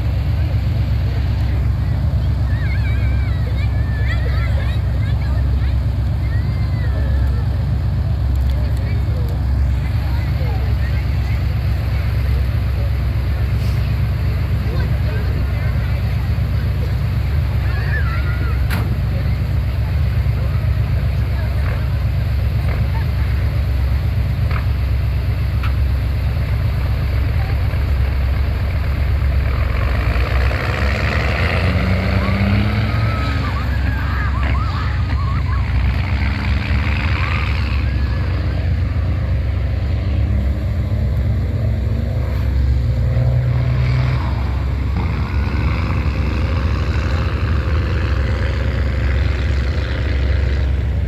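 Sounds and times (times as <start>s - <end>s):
onlookers' voices: 0.0s - 51.0s
truck engine rumbling: 0.0s - 51.0s.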